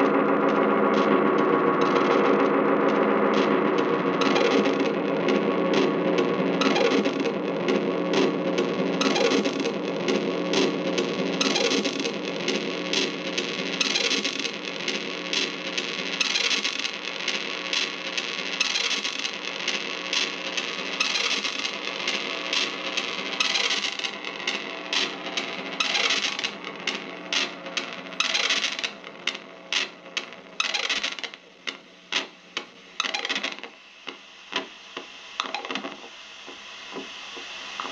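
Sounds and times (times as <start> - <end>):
clicks and crackles: 0.0 - 37.9
electronic guitar drone: 0.0 - 37.9
scratchy crackles and noise bursts: 0.0 - 37.9.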